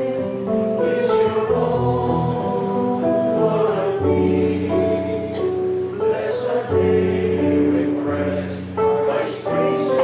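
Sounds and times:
choir singing a hymn: 0:00.0 - 0:10.0.

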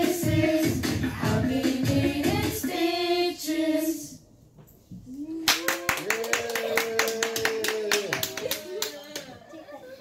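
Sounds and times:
small group clapping: 0:05.4 - 0:09.4.

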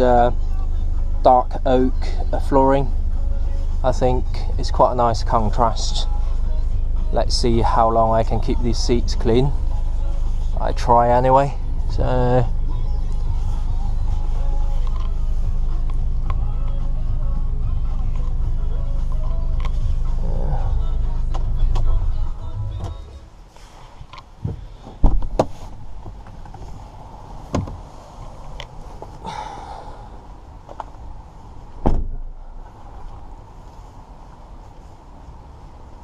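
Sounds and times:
diesel engine idling: 0:00.0 - 0:23.8, 0:24.6 - 0:36.0
van door closing thump: 0:24.4 - 0:25.8, 0:27.5 - 0:27.8, 0:31.8 - 0:32.3.

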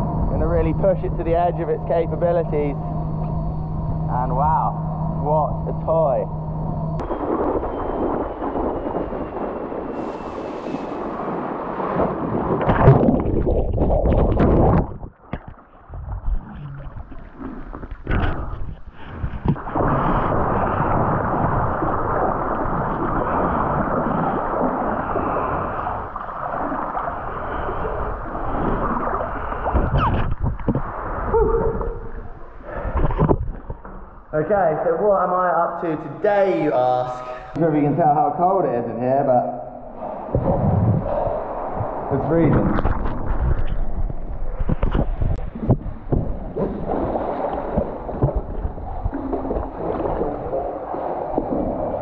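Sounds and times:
wind rushing over microphone: 0:00.0 - 0:34.3, 0:39.8 - 0:52.0.

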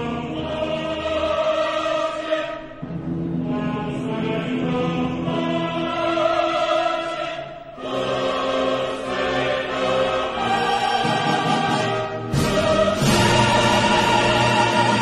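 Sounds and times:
choir over orchestra: 0:00.0 - 0:15.0.

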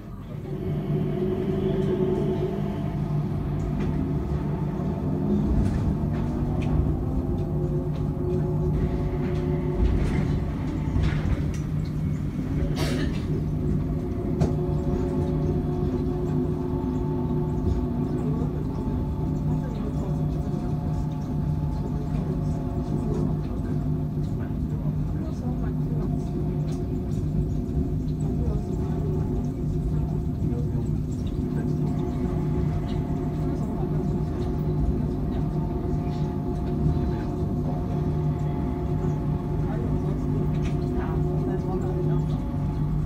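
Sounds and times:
steady electric hum: 0:00.0 - 0:43.0
train cabin rumble: 0:00.0 - 0:43.0.

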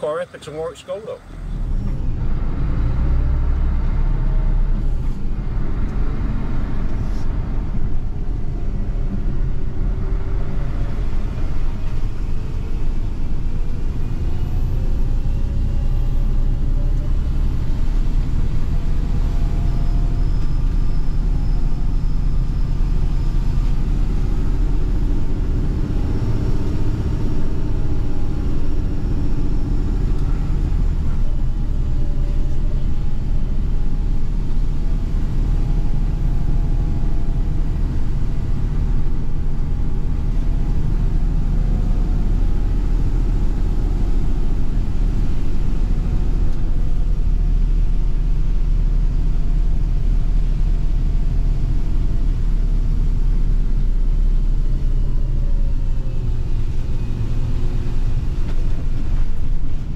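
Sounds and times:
lorry engine and road rumble: 0:00.0 - 0:59.9.

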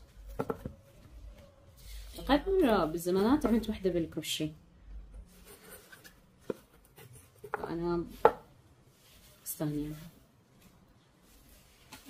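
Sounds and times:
soft rustling: 0:05.2 - 0:12.0.

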